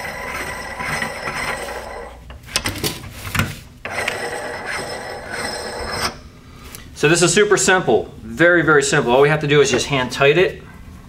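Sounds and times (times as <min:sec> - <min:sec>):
metal nut rubbing on thread: 0:00.0 - 0:02.2, 0:03.9 - 0:06.2.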